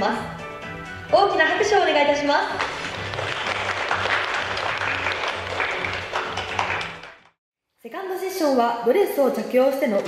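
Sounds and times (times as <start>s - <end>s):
background music with pulsing beat: 1.8s - 7.3s
audience applause: 2.6s - 7.4s.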